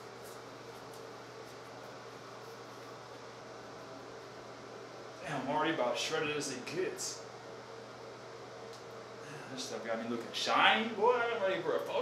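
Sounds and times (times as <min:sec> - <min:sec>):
ventilation hiss and hum: 0:00.0 - 0:12.0.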